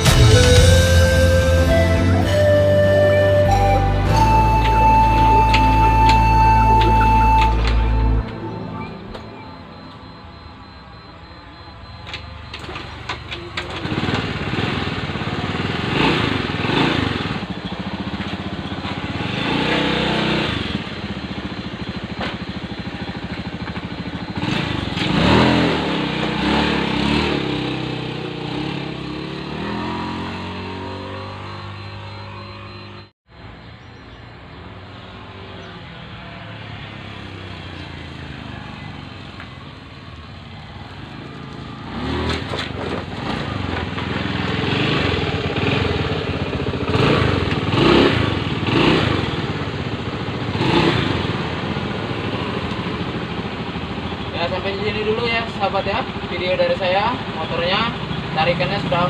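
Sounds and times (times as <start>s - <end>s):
scooter engine revving: 12.0s - 33.2s, 35.2s - 59.0s.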